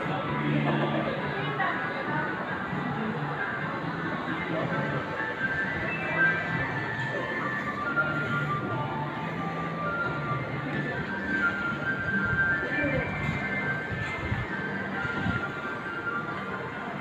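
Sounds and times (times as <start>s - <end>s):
background music over speakers: 0.0s - 17.0s
large indoor space noise: 0.0s - 17.0s.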